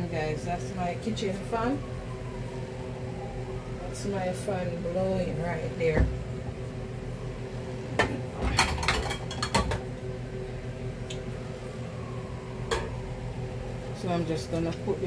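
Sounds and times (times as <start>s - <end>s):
kitchen exhaust fan humming: 0.0s - 15.0s.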